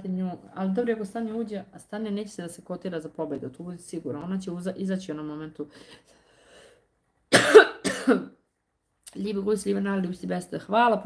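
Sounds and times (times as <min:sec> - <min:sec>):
woman coughing: 0:07.3 - 0:08.4.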